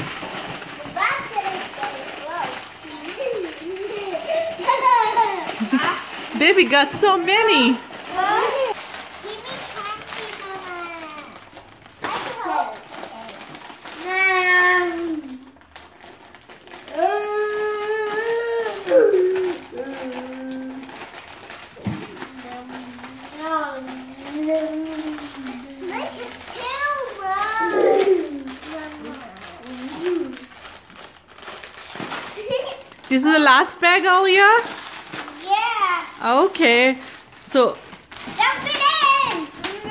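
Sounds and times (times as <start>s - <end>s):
plastic bags crinkling: 0.0s - 39.9s
children calling out: 0.8s - 6.0s, 7.5s - 11.4s, 14.0s - 15.6s, 22.2s - 30.5s, 38.4s - 39.9s.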